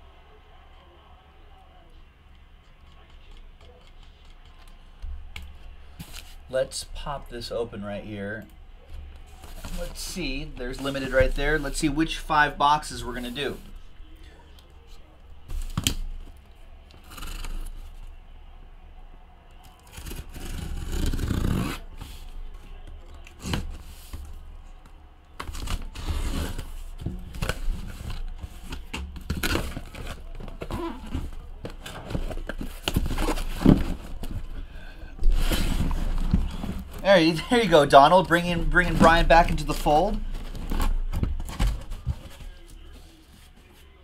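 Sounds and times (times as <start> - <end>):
cardboard scraping: 9.0 - 12.4, 25.4 - 34.6, 35.2 - 43.9
knocks of boxes handled: 38.9 - 42.8.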